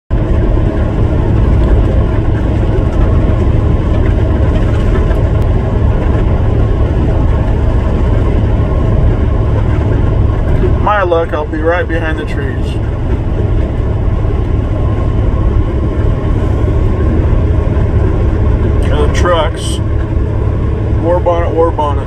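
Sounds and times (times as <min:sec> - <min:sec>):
freight train rumbling: 0:00.1 - 0:22.0.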